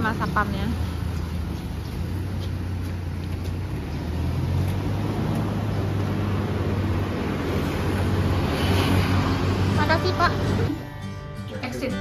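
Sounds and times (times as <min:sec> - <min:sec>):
light street traffic: 0:00.0 - 0:12.0.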